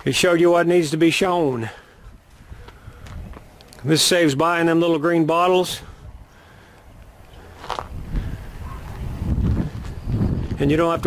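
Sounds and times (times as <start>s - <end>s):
footsteps scuffing on gravel: 2.3s - 3.9s, 7.5s - 8.0s.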